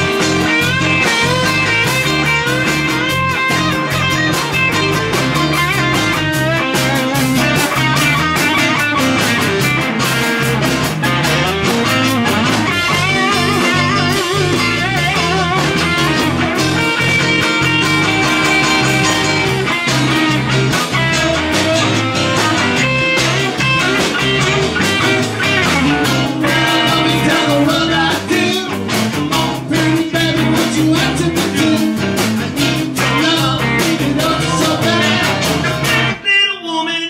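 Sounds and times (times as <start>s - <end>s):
drum kit: 0.0s - 36.2s
bass guitar: 0.0s - 36.3s
electric guitars: 0.0s - 36.3s
man singing: 25.8s - 37.0s.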